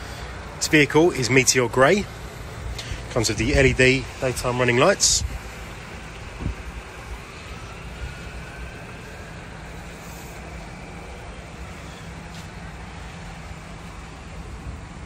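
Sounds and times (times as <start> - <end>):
car engine idling: 0.0 - 15.0
faint rising whine: 0.0 - 15.0
light traffic noise: 0.0 - 15.0.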